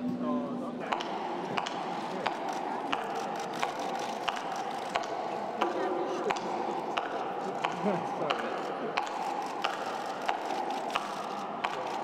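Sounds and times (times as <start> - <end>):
audience chatter: 0.0 - 12.0
high-heeled footsteps: 0.8 - 12.0.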